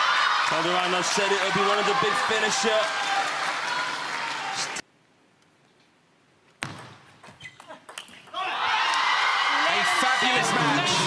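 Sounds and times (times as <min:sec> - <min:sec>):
loud crowd noise: 0:00.0 - 0:04.8, 0:08.4 - 0:11.0.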